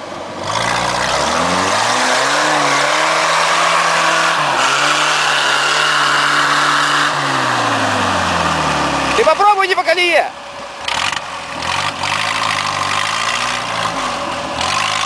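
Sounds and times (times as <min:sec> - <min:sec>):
engine revving hard: 0:00.4 - 0:09.3, 0:10.9 - 0:15.0.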